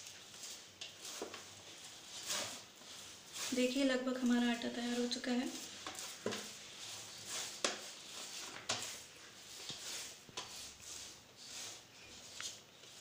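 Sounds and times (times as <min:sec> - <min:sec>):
hands patting dough: 0:00.0 - 0:11.0.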